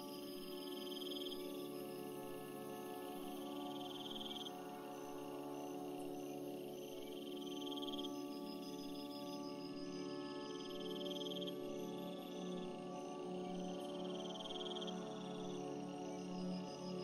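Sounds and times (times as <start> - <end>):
ambient meditation music: 0.0 - 17.0
crickets chirping: 3.4 - 6.0, 6.6 - 11.5.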